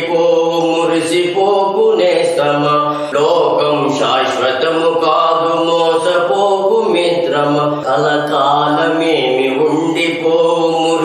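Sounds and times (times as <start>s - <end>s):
man singing in chanting style: 0.0s - 11.0s.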